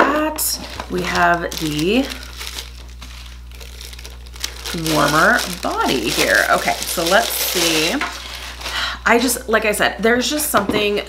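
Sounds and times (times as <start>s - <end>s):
plastic bag crinkling: 0.4s - 9.0s.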